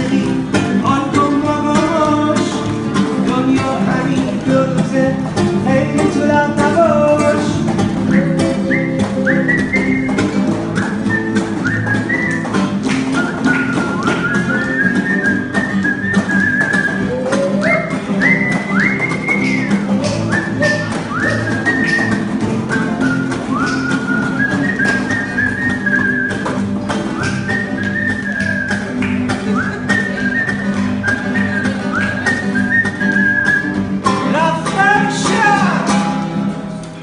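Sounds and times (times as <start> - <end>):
classical guitar strummed: 0.0 - 37.0
whistled melody: 8.0 - 34.0.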